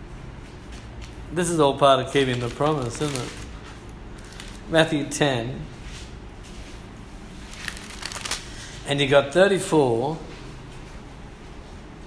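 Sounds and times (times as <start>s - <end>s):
pages rustling: 2.1s - 4.7s, 7.4s - 8.7s.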